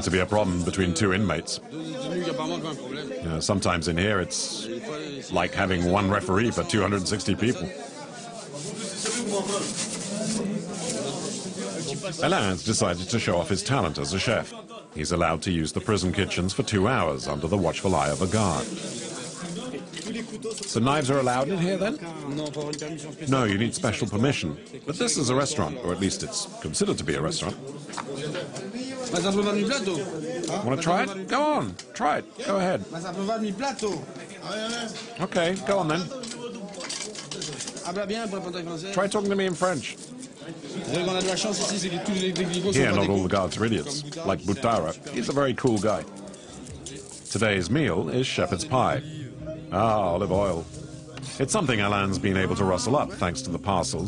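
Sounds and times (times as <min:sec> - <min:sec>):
man talking: 0:00.0 - 0:27.6, 0:40.7 - 0:46.1, 0:46.7 - 0:54.0
rubbing and rustling of handled things: 0:06.6 - 0:13.6, 0:17.0 - 0:21.5, 0:33.9 - 0:48.0.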